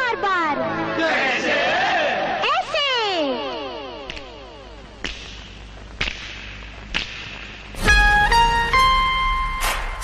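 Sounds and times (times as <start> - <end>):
sharp cracks: 4.0 - 7.8.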